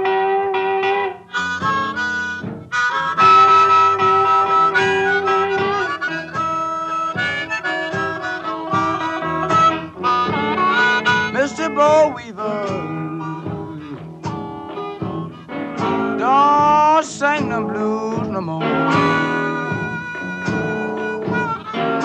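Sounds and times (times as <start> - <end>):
blues harmonica: 0.0 - 22.0
plucked guitar: 0.0 - 22.0.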